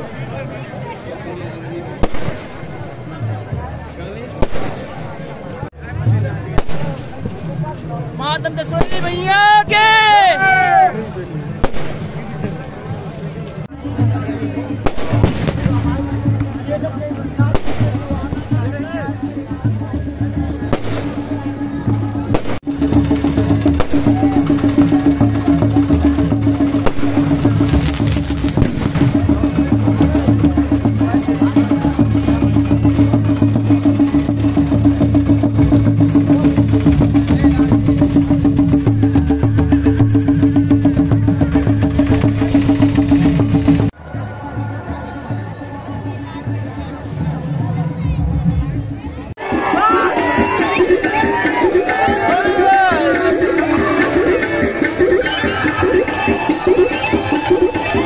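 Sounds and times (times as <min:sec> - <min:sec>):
crowd voices: 0:00.0 - 0:58.0
procession drumming: 0:13.8 - 0:44.0, 0:49.4 - 0:58.0.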